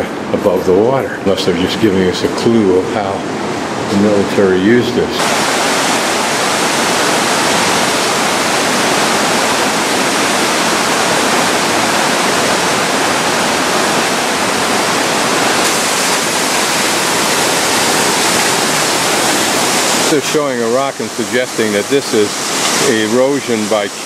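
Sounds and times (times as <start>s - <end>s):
waterfall roaring: 0.0s - 24.0s.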